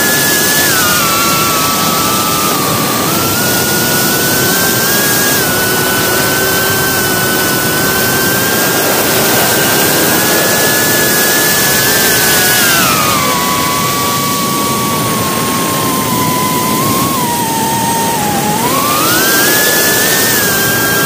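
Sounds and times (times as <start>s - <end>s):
small aircraft propeller whine: 0.0s - 21.0s.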